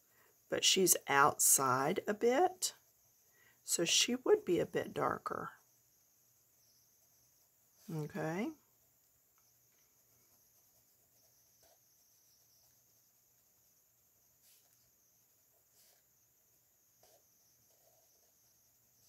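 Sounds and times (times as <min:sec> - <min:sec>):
pencil strokes on paper: 0:00.2 - 0:19.0.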